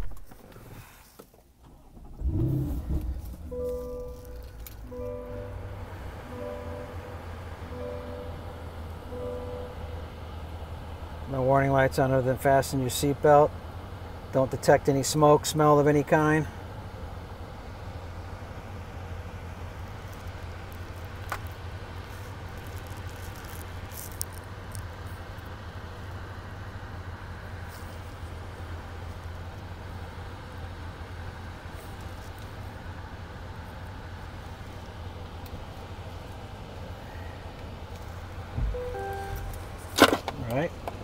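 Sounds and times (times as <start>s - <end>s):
car engine idling: 0.1s - 41.0s
short tone: 2.7s - 10.2s, 38.6s - 39.9s.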